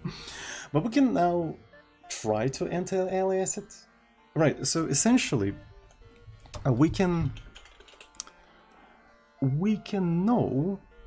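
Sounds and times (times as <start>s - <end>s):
keyboard keystrokes: 6.4s - 8.3s.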